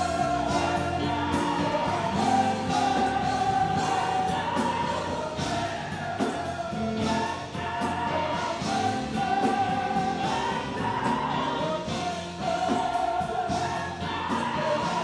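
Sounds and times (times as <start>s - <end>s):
gospel choir singing: 0.0s - 15.0s
instrumental accompaniment: 0.0s - 15.0s.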